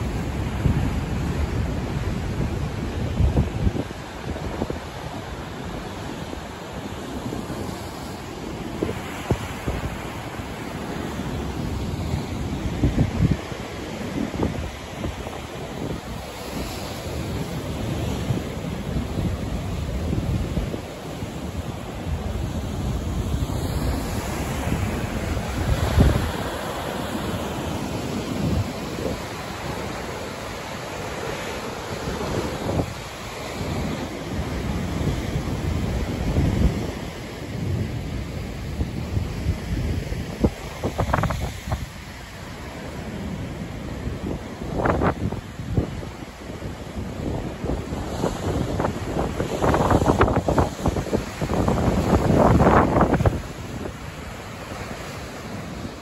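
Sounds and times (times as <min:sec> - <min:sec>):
heavy surf breaking over rocks: 0:00.0 - 0:56.0
wind buffeting microphone: 0:00.0 - 0:56.0.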